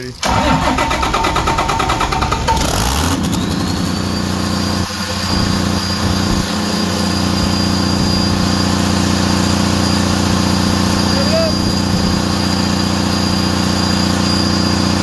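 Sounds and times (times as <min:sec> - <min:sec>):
diesel engine idling: 0:00.0 - 0:15.0
high thin whine: 0:02.3 - 0:15.0.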